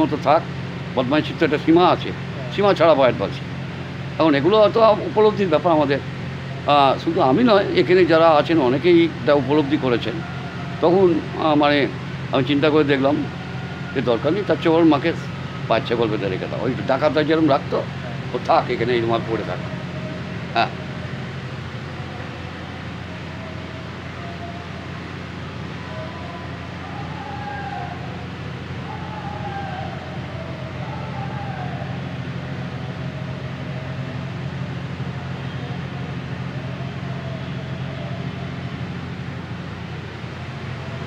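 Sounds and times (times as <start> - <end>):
faint wavering tones: 0.0 - 41.0
steady low hum: 0.0 - 41.0.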